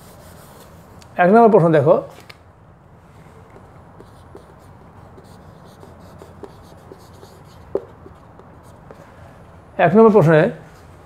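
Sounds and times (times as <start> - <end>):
marker scratching on whiteboard: 0.0 - 0.9, 3.5 - 9.2
marker tap on whiteboard: 6.2 - 7.0, 7.7 - 9.0.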